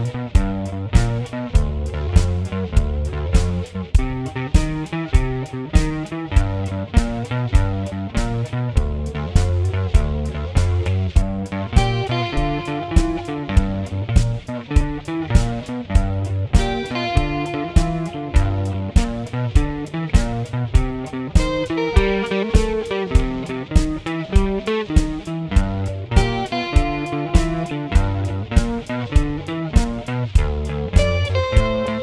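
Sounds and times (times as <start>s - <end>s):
blues guitar over steady beat: 0.0s - 32.0s.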